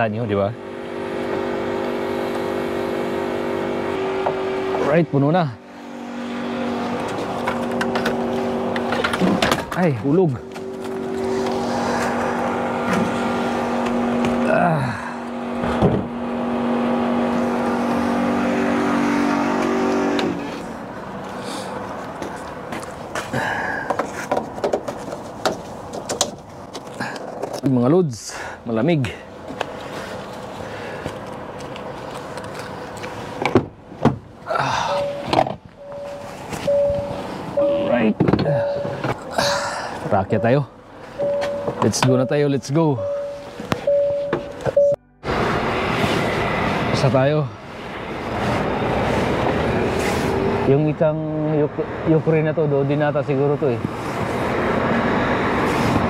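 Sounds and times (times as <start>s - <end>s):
loud door clunk: 15.6s - 16.2s.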